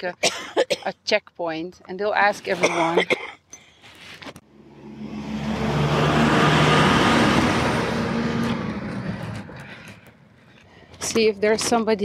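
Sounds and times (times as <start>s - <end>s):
car passing by: 4.5s - 10.1s.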